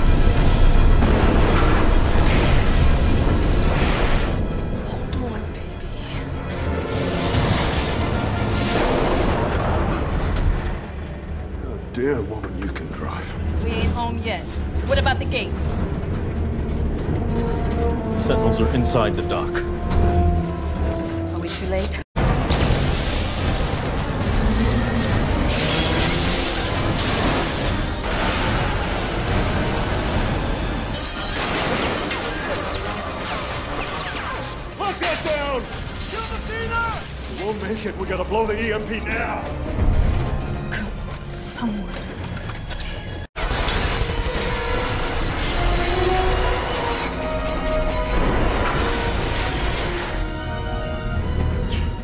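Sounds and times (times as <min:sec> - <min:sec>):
crashing and explosions: 0:00.0 - 0:52.0
film score music: 0:00.0 - 0:52.0
metal debris smashing: 0:22.2 - 0:40.6, 0:43.4 - 0:50.2.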